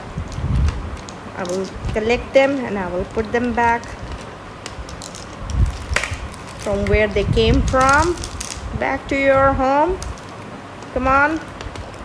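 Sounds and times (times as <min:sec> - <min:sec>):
plastic bag rustling: 0:00.0 - 0:08.8
plastic balls clicking: 0:00.2 - 0:08.8, 0:09.9 - 0:12.0.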